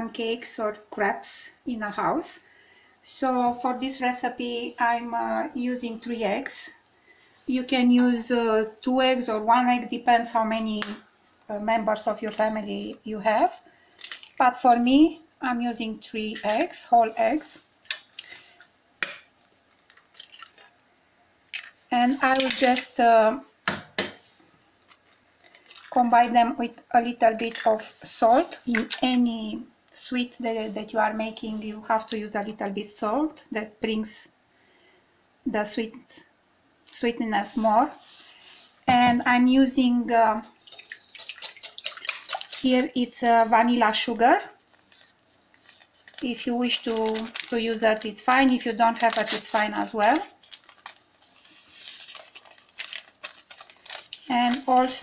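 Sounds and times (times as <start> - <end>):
paper sachet crinkling and tearing: 14.0 - 14.4, 19.7 - 20.7, 44.6 - 55.0.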